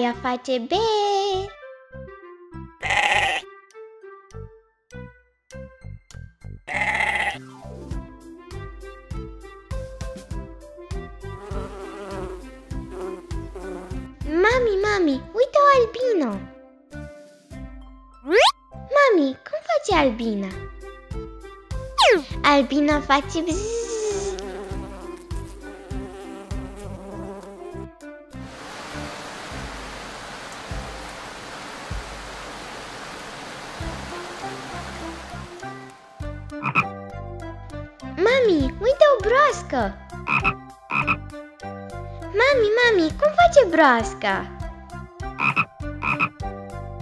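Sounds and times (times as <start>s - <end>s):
cartoon frog croak: 2.8s - 3.4s, 6.7s - 7.4s, 18.3s - 18.6s, 36.6s - 36.9s, 40.2s - 41.2s, 45.4s - 46.4s
cartoon bee buzzing: 11.2s - 14.1s, 18.2s - 18.6s, 22.0s - 22.4s, 23.5s - 27.9s
cartoon falling rain hiss: 11.4s - 14.0s, 23.5s - 27.7s, 28.4s - 36.2s
child calling out: 22.0s - 22.4s
backing music: 33.8s - 37.8s.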